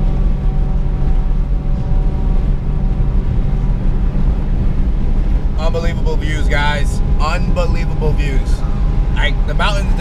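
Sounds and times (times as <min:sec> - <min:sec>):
engine and road drone: 0:00.0 - 0:10.0
faint engine hum: 0:00.0 - 0:10.0.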